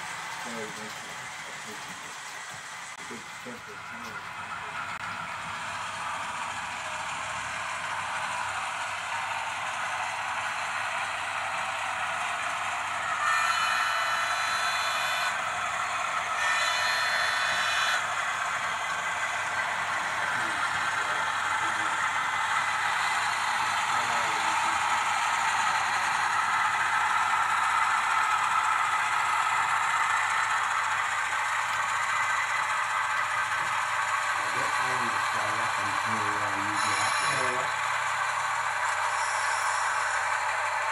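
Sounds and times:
model train rolling on track: 0.0s - 40.9s.

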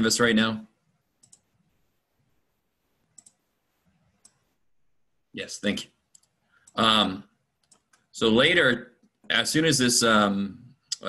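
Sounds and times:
soft clicks: 1.2s - 1.6s, 3.0s - 3.4s, 4.2s - 4.6s, 6.1s - 6.8s, 7.6s - 8.1s.

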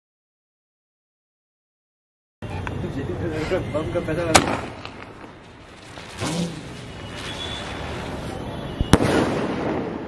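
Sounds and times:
firework bursting: 4.3s - 10.0s.

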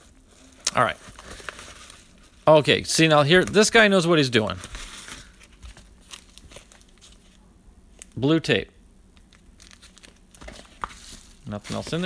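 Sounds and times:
padded mailer crinkling: 0.0s - 2.4s, 3.0s - 7.4s, 9.3s - 12.0s.

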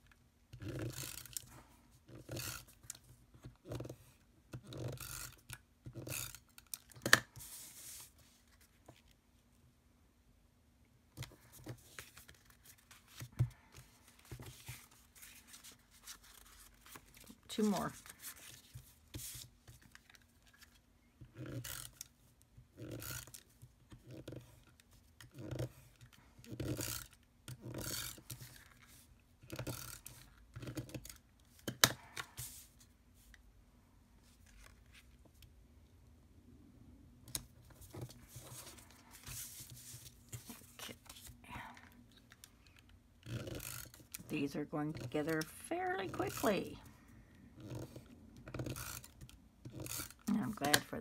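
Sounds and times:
tape runner drawn along paper: 3.7s - 9.1s, 11.2s - 20.8s, 22.8s - 32.9s, 37.6s - 41.4s, 47.6s - 51.0s.

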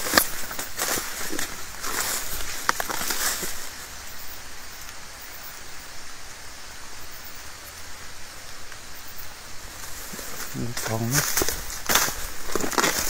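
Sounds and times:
outdoor background hiss: 0.0s - 13.0s.

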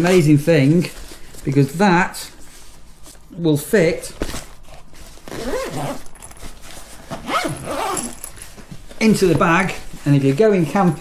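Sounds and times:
fabric case rustling: 4.1s - 11.0s.

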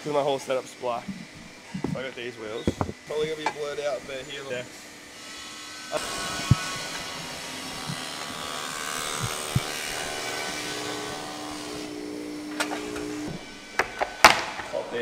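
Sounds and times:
machinery knocks: 2.7s - 3.4s.

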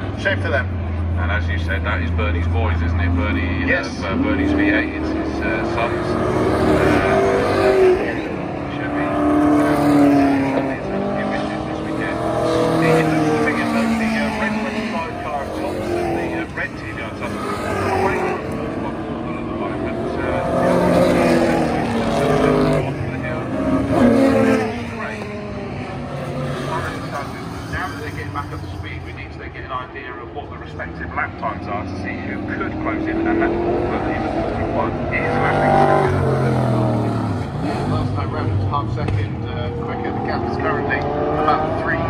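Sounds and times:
race cars passing: 0.0s - 42.0s.

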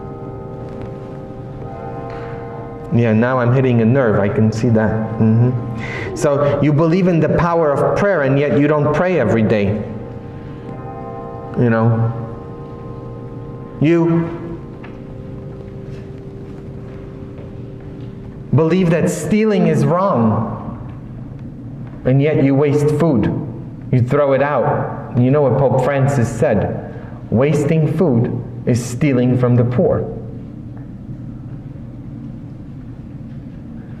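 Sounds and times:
faint hum: 0.0s - 34.0s
low rumble of room tone: 0.0s - 34.0s.

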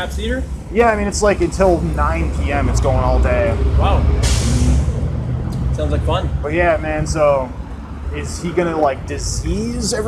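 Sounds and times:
street traffic rumble: 0.0s - 10.0s
hiss of released air: 4.2s - 4.8s.

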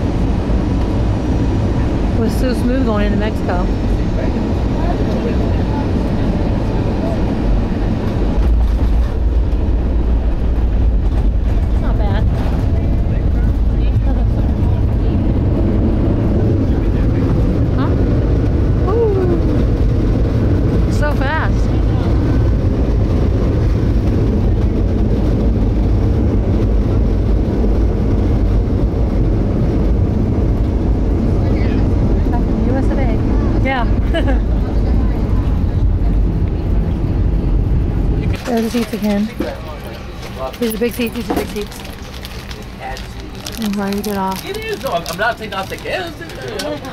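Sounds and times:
jet airliner cabin rumble: 0.0s - 46.9s.

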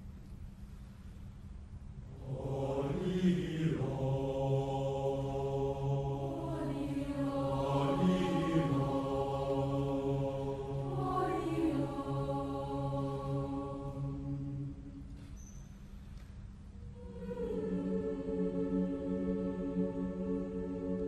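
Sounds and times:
choir singing: 2.1s - 15.1s, 16.9s - 21.0s.

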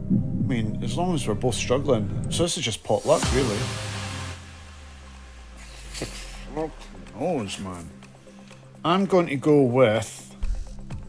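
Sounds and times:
hiss: 2.9s - 6.8s
countdown timer music drone: 3.2s - 9.0s.

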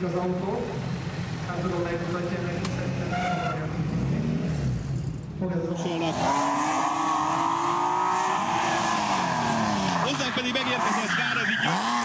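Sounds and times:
rally car engine at speed: 0.0s - 12.0s.

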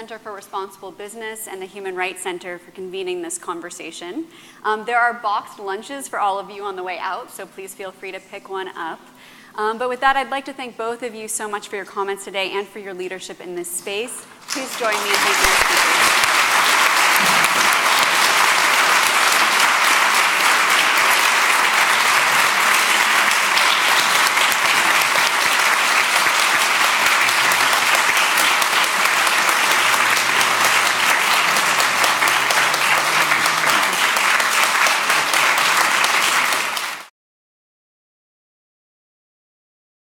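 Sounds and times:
audience applauding: 14.4s - 37.1s.

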